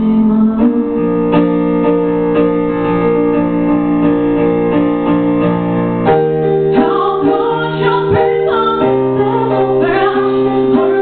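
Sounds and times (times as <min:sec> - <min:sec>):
woman singing into a microphone: 0:00.0 - 0:01.6, 0:06.7 - 0:11.0
electric piano chords: 0:00.0 - 0:11.0.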